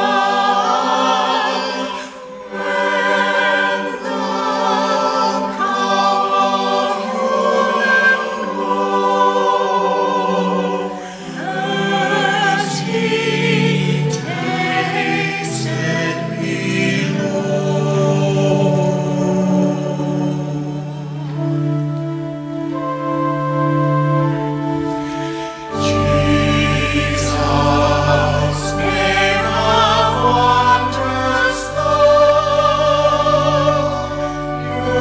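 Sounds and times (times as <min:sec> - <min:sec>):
choir singing unaccompanied: 0:00.0 - 0:35.0.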